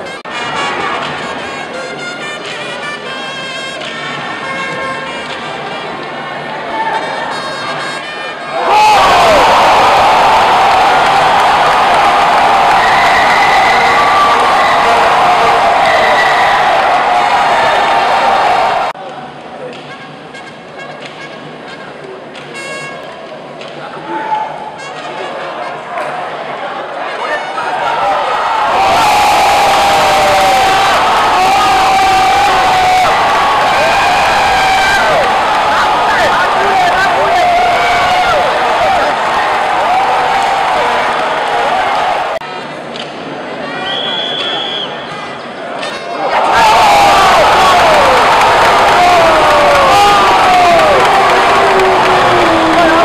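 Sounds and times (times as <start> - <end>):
crowd cheering and shouting: 6.4 - 19.0, 25.5 - 42.4, 43.6 - 53.0
long falling yells: 8.6 - 19.0, 27.9 - 42.4, 46.3 - 53.0.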